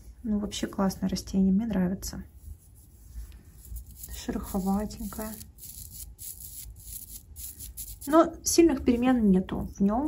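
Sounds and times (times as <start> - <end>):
fingers rubbing terracotta pot: 3.4 - 8.2.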